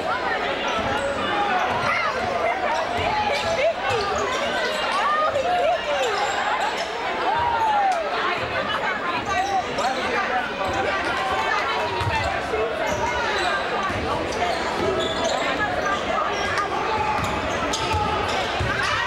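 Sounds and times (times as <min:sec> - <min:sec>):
crowd and players calling out: 0:00.0 - 0:19.0.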